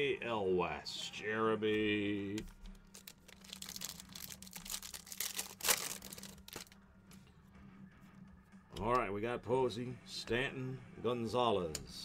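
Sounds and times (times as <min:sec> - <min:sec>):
foil wrapper crinkling and tearing: 0:02.7 - 0:06.8.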